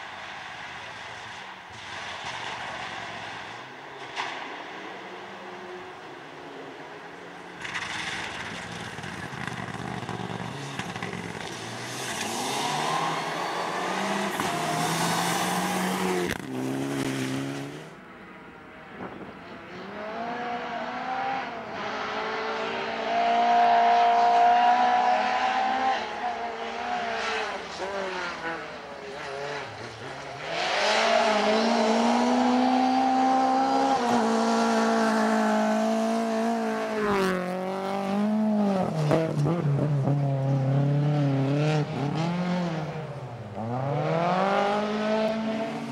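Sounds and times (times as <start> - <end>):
rally car engine revving: 7.6 - 18.0, 19.1 - 45.9.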